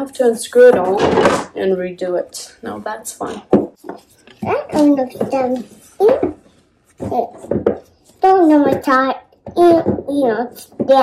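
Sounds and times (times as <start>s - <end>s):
toddler talking: 4.4s - 6.4s, 7.0s - 7.6s, 8.2s - 11.0s.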